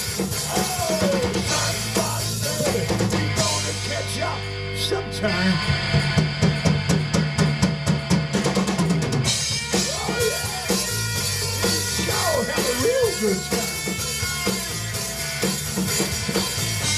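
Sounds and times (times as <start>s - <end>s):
fast drum run: 0.0s - 16.9s
rock band playing: 0.0s - 16.9s.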